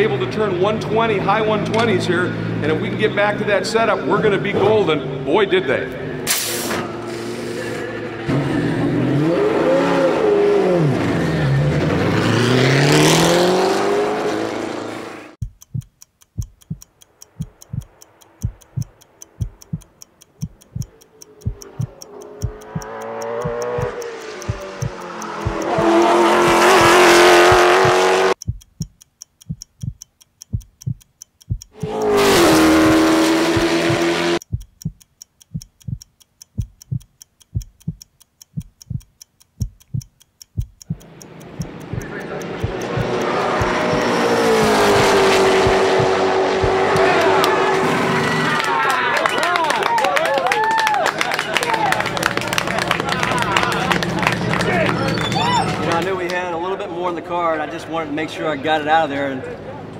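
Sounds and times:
race car engines at full throttle: 0.0 - 15.4, 20.3 - 28.4, 31.8 - 34.4, 40.9 - 48.7, 52.0 - 59.9
regular thudding beat: 15.4 - 47.5.

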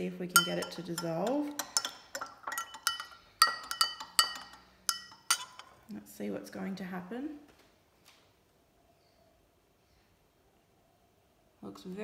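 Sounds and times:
spoon stirring water: 0.0 - 5.8
spoon clinking against glass: 0.3 - 5.8.

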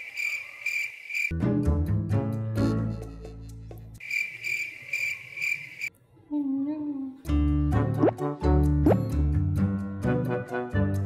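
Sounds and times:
playful background music: 1.3 - 4.0, 7.2 - 11.0.

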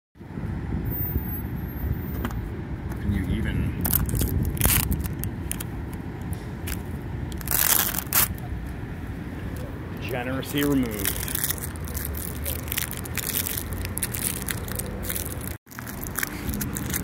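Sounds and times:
steady low rumble: 2.4 - 17.0
sticker ripping and scraping: 3.8 - 5.7, 6.7 - 8.4, 10.6 - 17.0.

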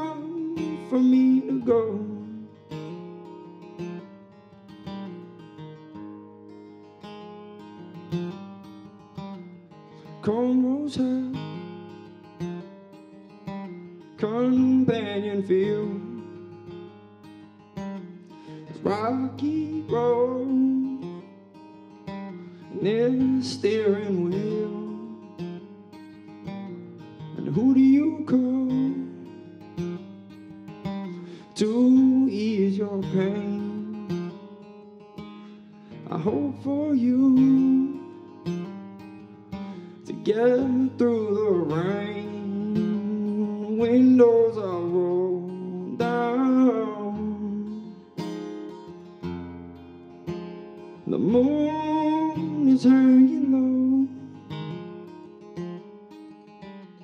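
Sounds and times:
man singing: 0.0 - 2.8, 10.1 - 11.8, 14.1 - 16.5, 18.6 - 21.3, 22.6 - 25.6, 27.2 - 29.5, 31.1 - 34.5, 36.0 - 38.4, 39.6 - 48.4, 51.0 - 54.8
acoustic guitar strumming: 0.0 - 57.0.

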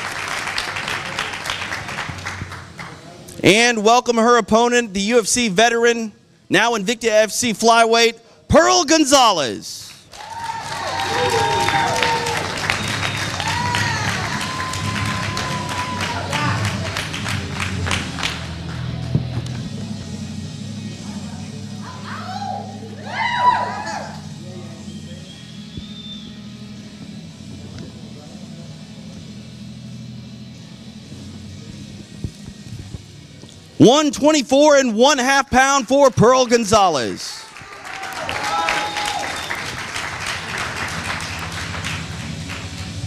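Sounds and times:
audience clapping and cheering: 0.0 - 3.2, 9.9 - 19.4, 37.0 - 43.0
music playing: 10.3 - 43.0.

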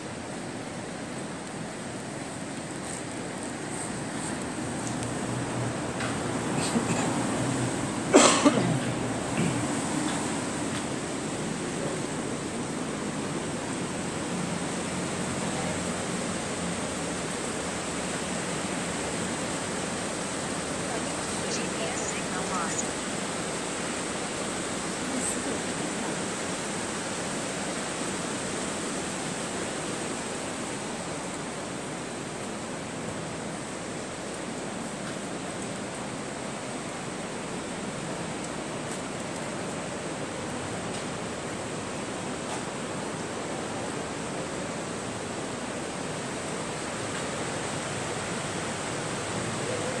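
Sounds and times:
river rushing over rocks: 0.0 - 50.0.

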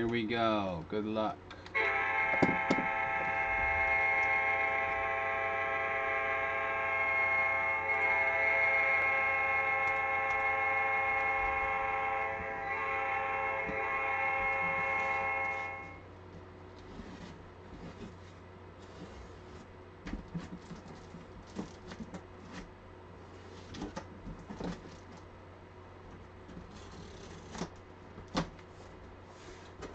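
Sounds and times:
alarm horn blaring: 1.7 - 16.1.

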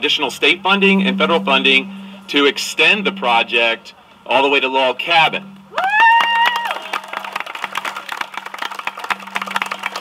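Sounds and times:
person shouting woo: 5.7 - 7.0
small crowd applauding: 5.8 - 10.0.

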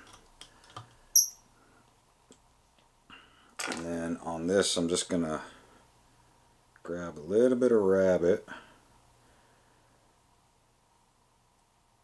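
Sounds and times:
thread bobbin squeak: 1.2 - 1.4.

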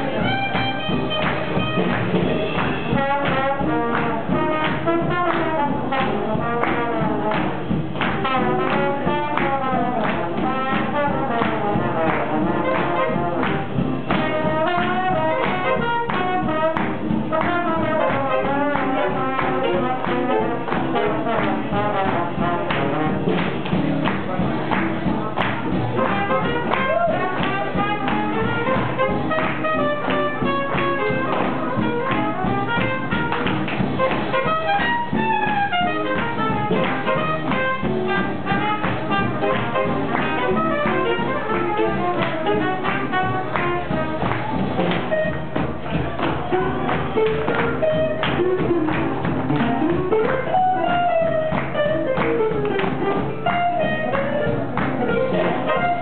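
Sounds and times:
big band playing swing jazz: 0.0 - 56.0.

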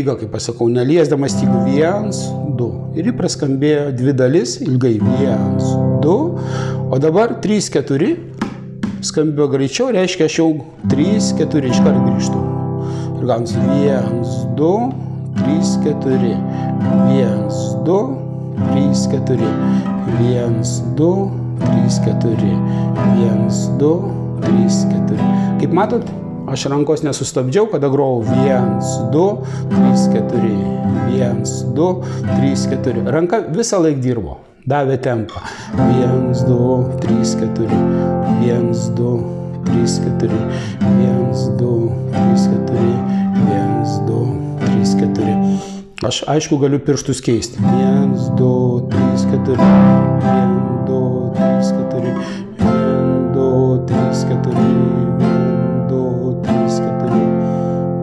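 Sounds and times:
nylon-string guitar strumming: 0.0 - 9.6, 10.6 - 46.0, 47.4 - 58.0.

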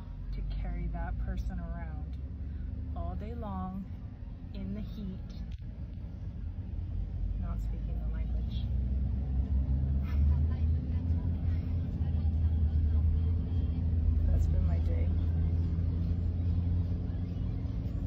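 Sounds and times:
car engine and tyres rumbling: 0.0 - 18.0.

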